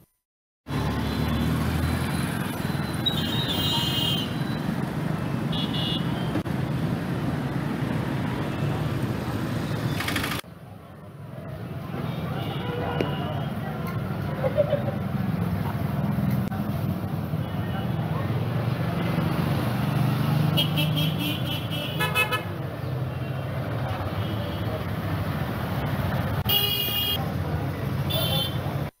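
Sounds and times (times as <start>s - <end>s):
vehicle engines rumbling: 0.7s - 29.0s
vehicle horns tooting: 5.5s - 6.4s, 20.6s - 22.5s, 26.4s - 27.2s.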